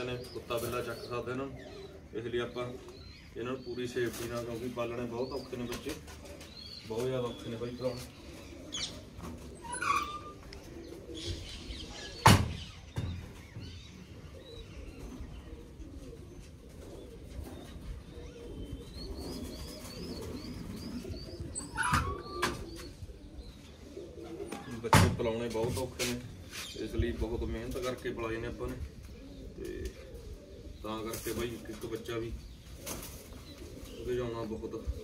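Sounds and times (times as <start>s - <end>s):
pigeons cooing: 0.0s - 35.0s
bird chirping high: 17.0s - 24.1s.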